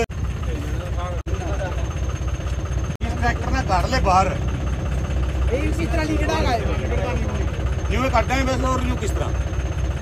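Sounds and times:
diesel engine idling: 0:00.0 - 0:10.0
voices talking: 0:00.0 - 0:10.0.

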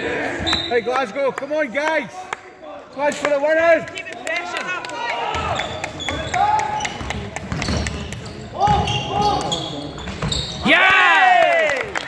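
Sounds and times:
shoes squeaking: 0:00.3 - 0:00.9, 0:05.3 - 0:10.8
players shouting: 0:10.6 - 0:11.9.

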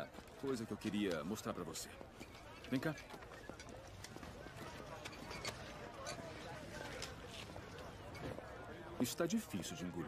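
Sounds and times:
distant people talking: 0:01.9 - 0:09.0.

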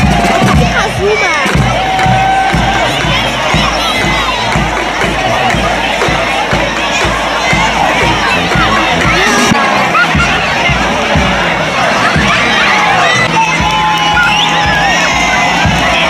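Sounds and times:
bass drum beating: 0:00.0 - 0:16.0
children shouting: 0:00.0 - 0:16.0
crowd cheering: 0:00.0 - 0:16.0.

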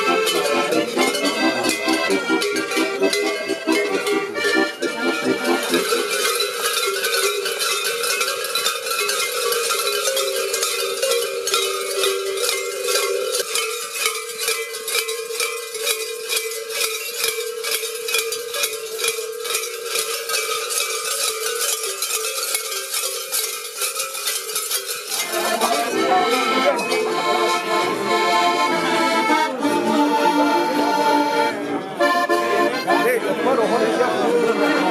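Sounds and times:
accordion playing: 0:00.0 - 0:13.6, 0:25.2 - 0:34.9
cowbells clanging rhythmically: 0:00.0 - 0:34.9.

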